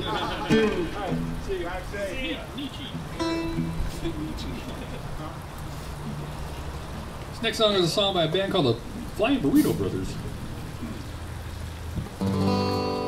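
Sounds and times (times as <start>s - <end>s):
people talking: 0.0s - 5.4s, 7.3s - 11.0s
acoustic guitar picked lightly: 0.0s - 13.0s.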